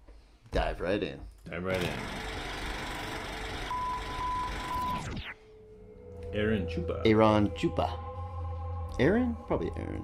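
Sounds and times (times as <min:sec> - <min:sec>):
high beep: 0:03.7 - 0:05.2.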